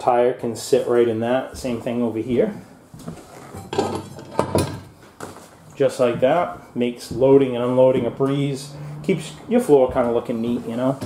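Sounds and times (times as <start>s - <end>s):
metallic clanks and rattles: 3.5s - 5.0s.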